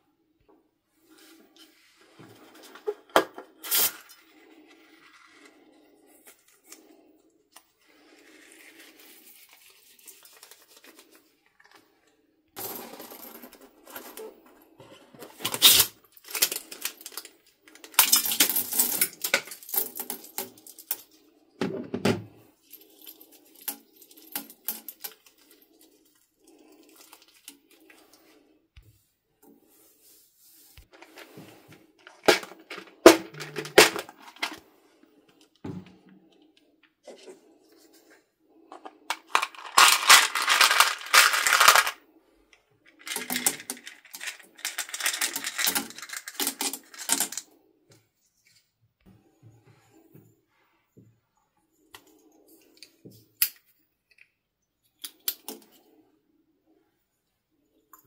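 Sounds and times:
plastic pieces scooped from tub: 30.8 - 34.6, 38.8 - 42.0, 43.0 - 47.4
plastic buttons clattering onto tray: 32.1 - 34.5.

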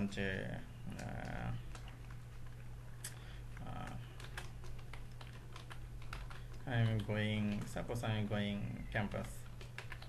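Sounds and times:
computer keyboard typing: 0.9 - 2.6, 3.6 - 10.0.

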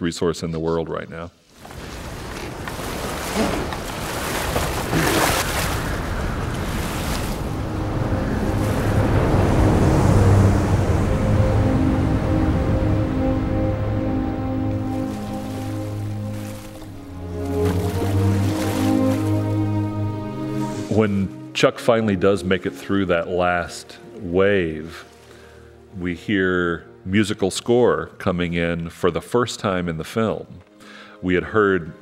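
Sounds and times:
ocean surf breaking: 1.6 - 21.0
orchestral film score: 2.4 - 32.0.

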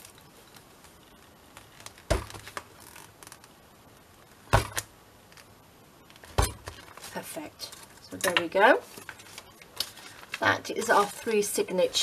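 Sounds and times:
hands handling paper: 6.1 - 12.0.

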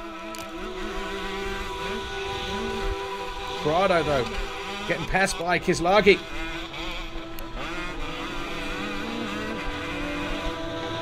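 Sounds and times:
motocross bike engine under load: 0.0 - 11.0.

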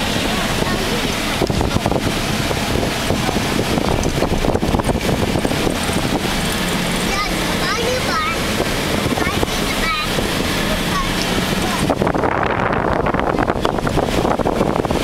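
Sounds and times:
low engine drone: 0.0 - 15.0
tyres rumbling on rough road: 0.0 - 15.0
wind: 0.0 - 15.0.

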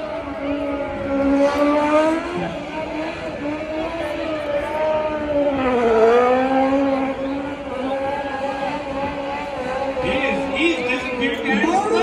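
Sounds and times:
race car engine high revs: 0.0 - 12.0.

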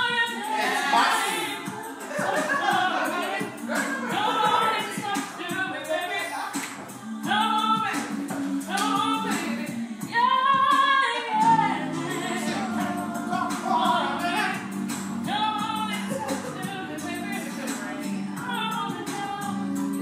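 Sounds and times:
person singing: 0.0 - 20.0.

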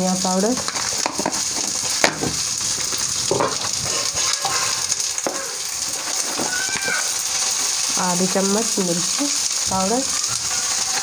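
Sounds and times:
peas sizzling in hot oil: 0.0 - 11.0.

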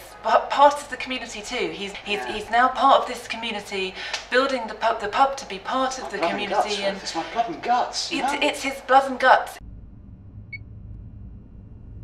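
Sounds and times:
steady low rumble: 9.6 - 12.0.

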